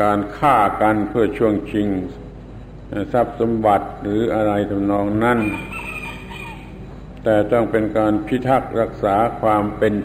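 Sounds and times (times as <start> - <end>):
rooster crowing faintly: 5.4 - 6.9
man's voice: 7.2 - 10.0.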